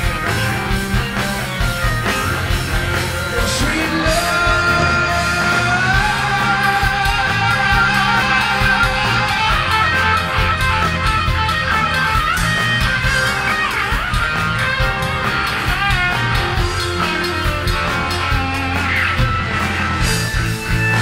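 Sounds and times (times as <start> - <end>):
electric guitar solo: 0.0 - 21.0
live rock band: 0.0 - 21.0.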